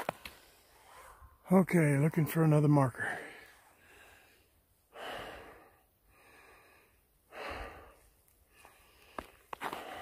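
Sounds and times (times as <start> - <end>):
man breathing heavily: 3.0 - 10.0.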